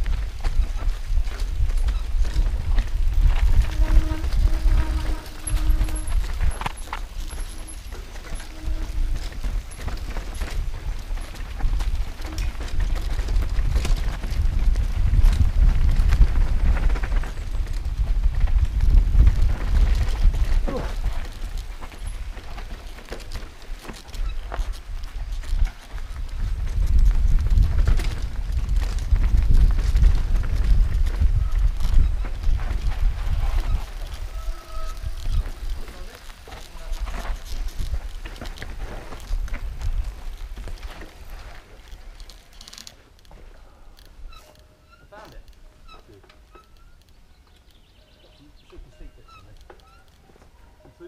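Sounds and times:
wind rumbling on microphone: 0:00.0 - 0:51.0.

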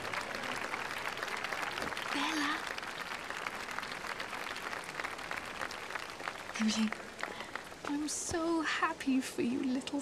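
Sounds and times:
crowd applauding: 0:00.0 - 0:08.3.

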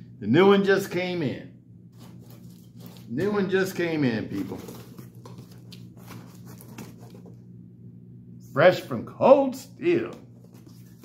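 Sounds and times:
steady low hum: 0:00.0 - 0:11.0
cardboard box handling rustle: 0:02.0 - 0:03.4, 0:04.3 - 0:07.4, 0:10.4 - 0:11.0.

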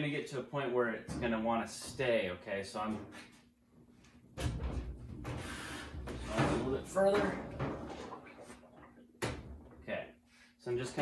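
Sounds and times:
washer cabinet scraping on floor: 0:04.4 - 0:08.8.

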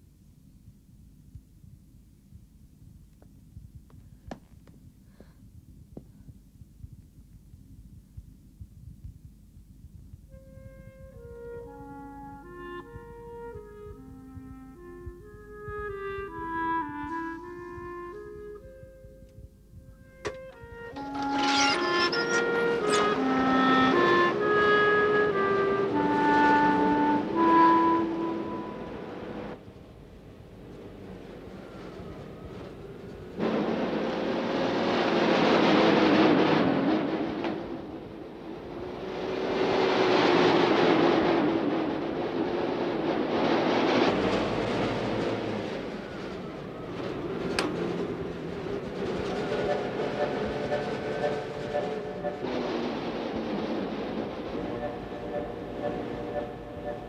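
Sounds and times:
film score melody: 0:10.3 - 0:29.6, 0:48.7 - 0:53.3, 0:54.4 - 0:57.0
vehicle running noise: 0:10.5 - 0:57.0.

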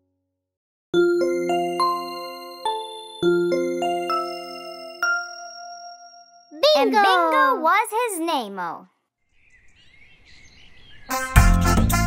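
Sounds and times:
upbeat children's music: 0:01.0 - 0:05.8, 0:06.6 - 0:08.8, 0:11.1 - 0:12.0
voice speaking with pitch swoops: 0:06.6 - 0:08.8
bird chirps: 0:09.3 - 0:11.2.

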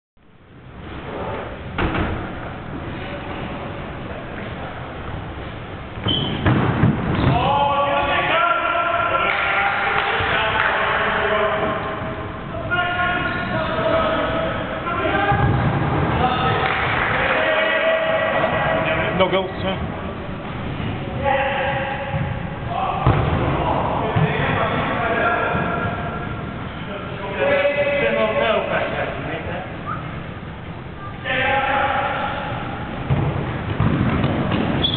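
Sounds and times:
indoor football game noise: 0:00.2 - 0:34.9
players calling and shouting: 0:06.0 - 0:34.9.

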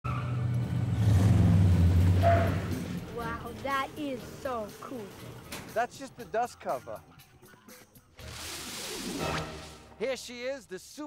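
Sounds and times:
suv engine rumbling: 0:00.0 - 0:06.3.

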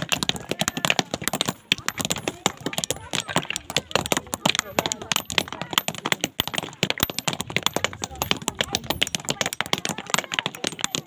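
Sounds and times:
hammers striking stone: 0:00.0 - 0:11.0
voices: 0:00.0 - 0:11.0.

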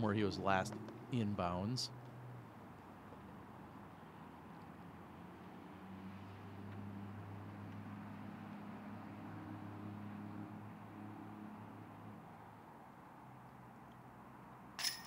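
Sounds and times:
disc hitting basket chains: 0:14.8 - 0:15.0.

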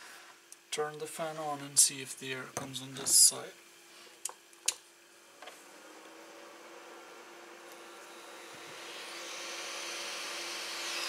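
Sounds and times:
small fan humming: 0:00.0 - 0:11.0.

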